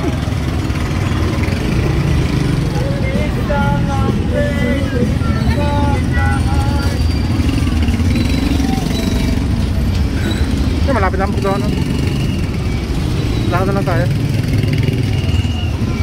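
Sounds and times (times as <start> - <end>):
people's voices: 0.0 - 16.0
traffic engine rumble: 0.0 - 16.0.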